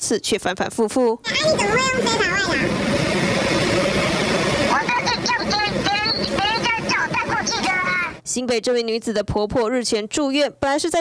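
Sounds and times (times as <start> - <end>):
pitch-shifted speech: 1.0 - 2.8, 4.7 - 11.0
rushing background noise: 1.3 - 8.2.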